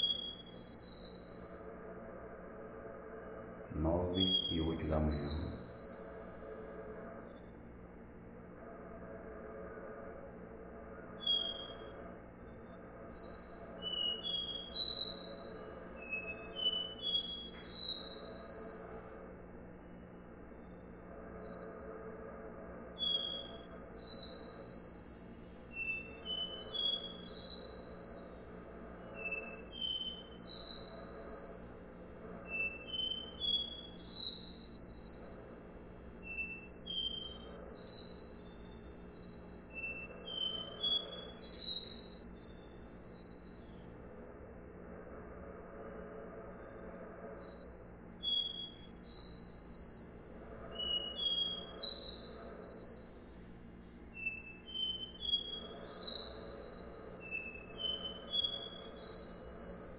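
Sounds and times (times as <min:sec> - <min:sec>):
bird singing whistled notes: 0:00.0 - 0:01.6, 0:03.8 - 0:07.5, 0:11.2 - 0:21.6, 0:23.0 - 0:44.3, 0:47.4 - 0:59.9
steady low hum: 0:18.2 - 0:48.9.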